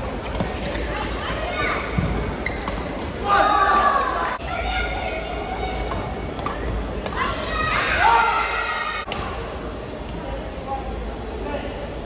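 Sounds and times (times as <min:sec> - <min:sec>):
voices shouting in a hall: 0:03.2 - 0:05.9, 0:07.0 - 0:09.1.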